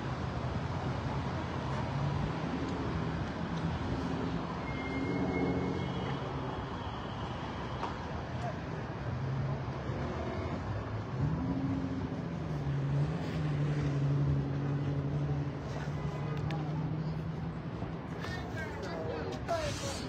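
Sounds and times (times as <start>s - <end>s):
street traffic: 0.0s - 20.0s.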